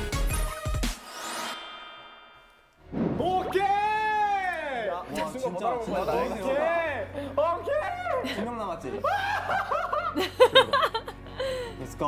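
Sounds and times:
woman laughing: 0:09.0 - 0:11.6.

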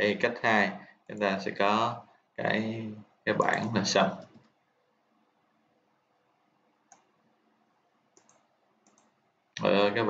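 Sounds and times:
faint computer clicks: 0:06.9 - 0:07.2, 0:08.1 - 0:09.2.

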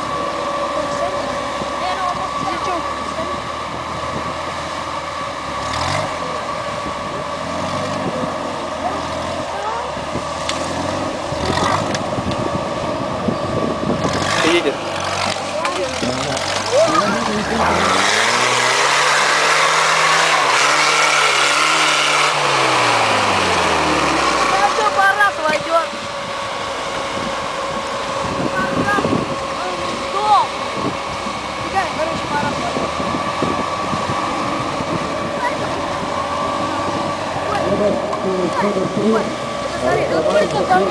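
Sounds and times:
off-road engine revving: 0:00.0 - 0:40.9.

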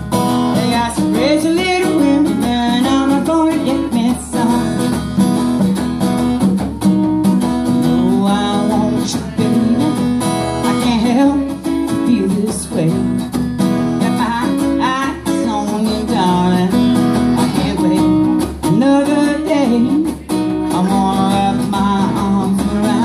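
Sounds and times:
acoustic blues guitar: 0:00.0 - 0:23.0.

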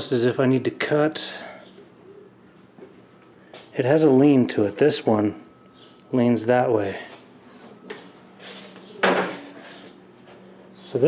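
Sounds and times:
low steady hum: 0:00.0 - 0:11.0
man speaking: 0:03.8 - 0:05.4.

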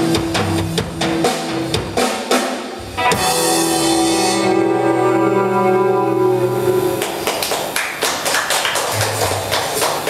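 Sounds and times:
rock band final chord: 0:02.8 - 0:07.2.

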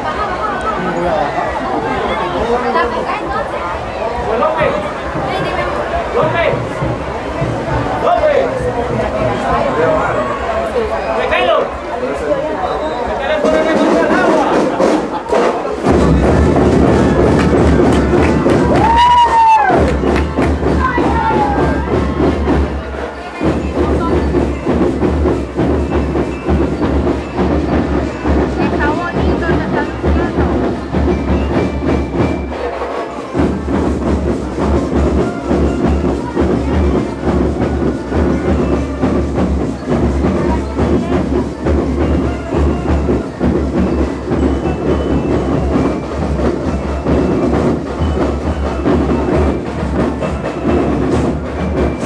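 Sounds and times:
marching band drum cadence: 0:00.0 - 0:52.0
deep bass drum beats: 0:04.4 - 0:10.4, 0:13.4 - 0:32.6, 0:33.4 - 0:52.0.

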